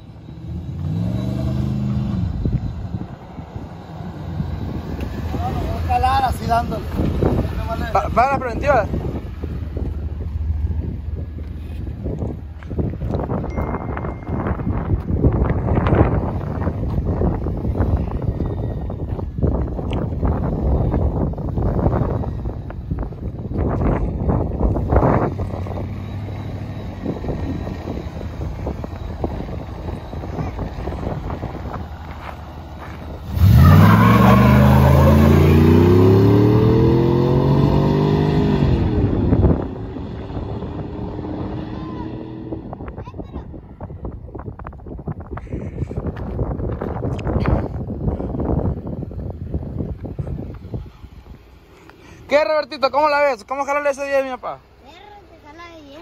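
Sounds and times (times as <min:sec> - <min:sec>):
pickup engine rumbling and revving: 0:00.0 - 0:56.0.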